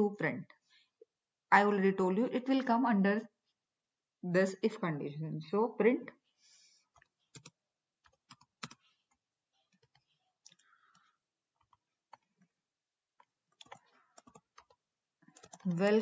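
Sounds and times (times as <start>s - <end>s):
computer keyboard keystrokes: 6.9s - 12.3s, 13.2s - 14.8s, 15.4s - 15.8s.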